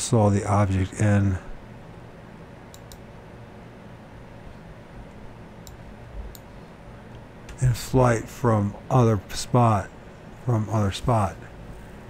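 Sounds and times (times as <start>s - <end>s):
low steady hum: 0.0s - 12.0s
computer mouse clicks: 2.7s - 3.0s, 5.6s - 6.5s.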